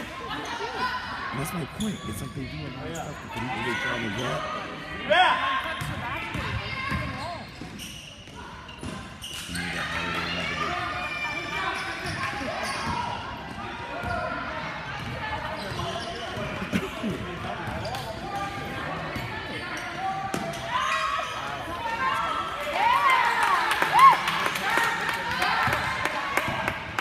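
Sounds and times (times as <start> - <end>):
spectators' voices and shouts: 0.0 - 27.0.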